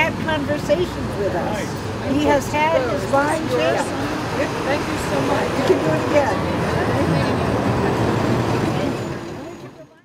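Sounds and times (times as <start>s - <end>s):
large vehicle engine rumbling: 0.0s - 10.0s
people talking indistinctly: 0.0s - 10.0s.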